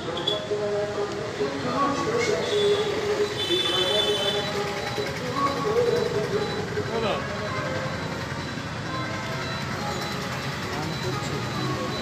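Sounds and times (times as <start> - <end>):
background hubbub: 0.0 - 12.0
crowd voices: 0.0 - 12.0
road traffic: 0.0 - 12.0.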